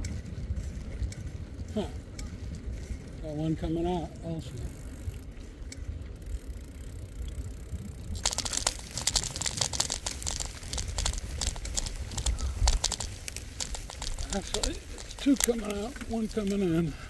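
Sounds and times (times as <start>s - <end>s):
wind rumble on microphone: 0.0s - 16.6s
tyres crackling over dry grass: 0.0s - 17.0s.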